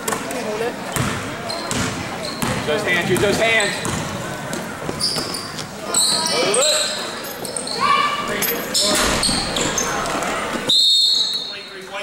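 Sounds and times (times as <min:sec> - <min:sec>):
basketball bouncing on wooden floor: 0:01.0 - 0:05.3.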